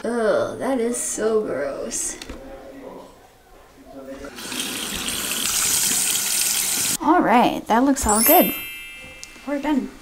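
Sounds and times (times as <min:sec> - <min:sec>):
faucet water running into sink: 0:04.3 - 0:07.0.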